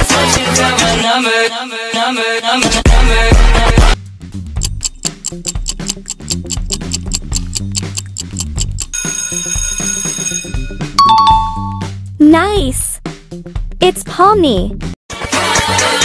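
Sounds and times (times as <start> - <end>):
fast ticking countdown music: 4.4 - 11.9.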